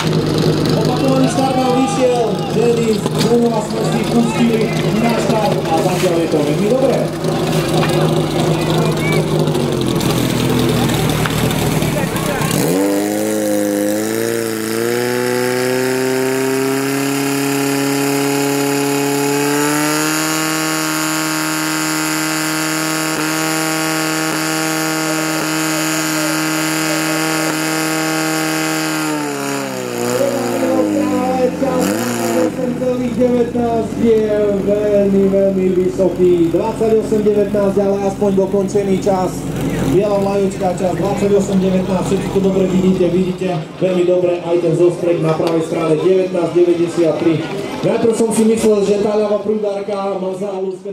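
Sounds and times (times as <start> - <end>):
crowd noise: 0.0 - 16.7, 24.3 - 28.1, 29.1 - 50.9
fire pump engine revving: 0.0 - 49.6.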